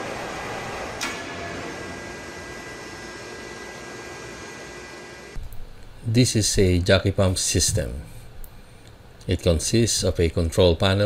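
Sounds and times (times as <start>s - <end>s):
machinery hum with high whine: 0.0s - 11.0s.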